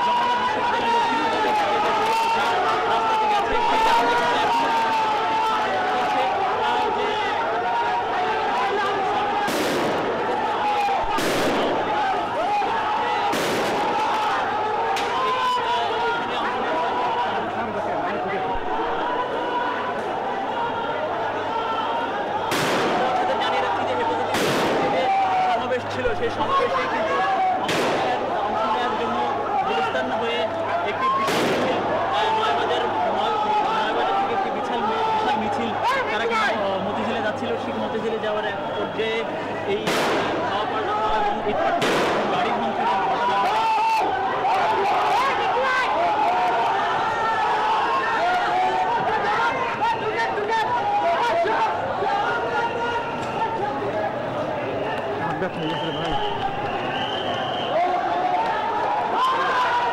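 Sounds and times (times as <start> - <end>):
crowd shouting: 0.0 - 59.9
gunshots: 9.4 - 10.4, 11.0 - 12.0, 13.2 - 14.3, 22.5 - 23.4, 24.3 - 25.1, 27.6 - 28.2, 31.2 - 31.9, 39.8 - 40.6, 41.7 - 42.5.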